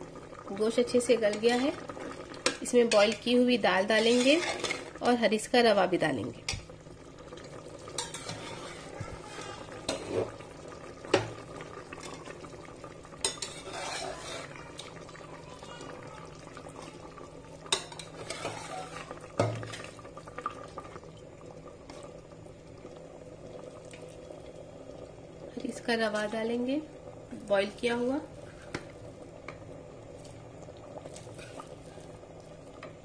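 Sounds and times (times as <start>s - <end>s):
stew bubbling: 0.0s - 5.4s, 6.0s - 33.0s.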